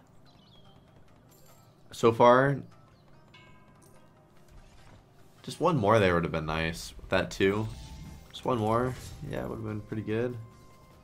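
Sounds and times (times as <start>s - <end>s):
faint game music: 0.0s - 11.0s.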